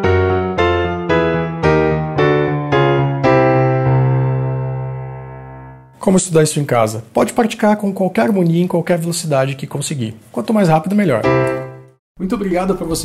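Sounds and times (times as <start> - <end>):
piano octaves and chords: 0.0 - 6.0, 10.9 - 12.0.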